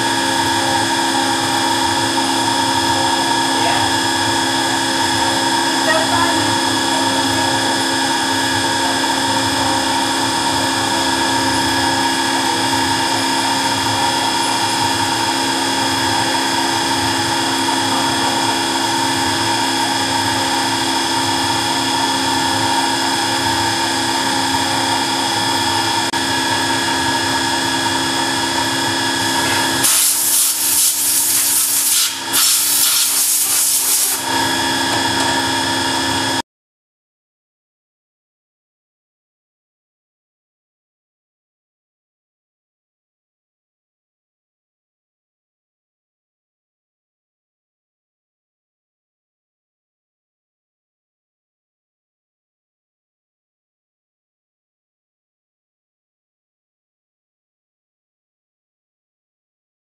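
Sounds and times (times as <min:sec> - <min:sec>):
milling machine spindle whine: 0:00.0 - 0:36.4
loud hiss: 0:29.8 - 0:34.2.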